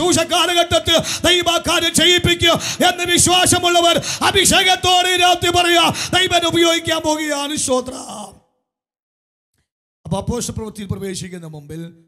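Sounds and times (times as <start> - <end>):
man preaching through a microphone: 0.0 - 8.5, 10.1 - 12.0.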